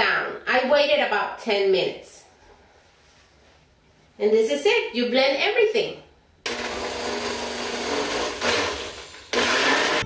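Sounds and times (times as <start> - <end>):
countertop blender running: 6.5 - 10.0.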